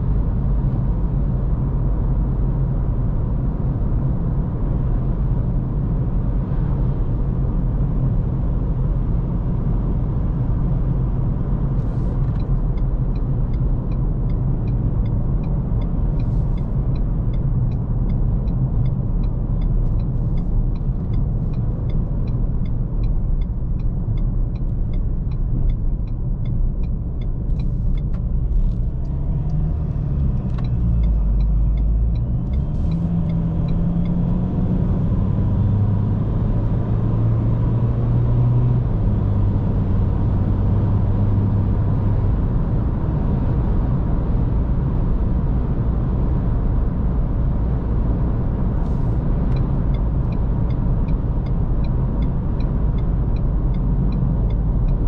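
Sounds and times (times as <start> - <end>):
diesel engine and road rumble: 0.0 - 55.0
light regular ticking: 11.8 - 34.2, 48.9 - 55.0.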